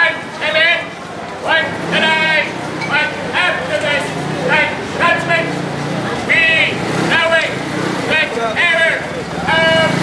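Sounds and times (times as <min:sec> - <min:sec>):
scooter engine hum: 0:00.9 - 0:10.0.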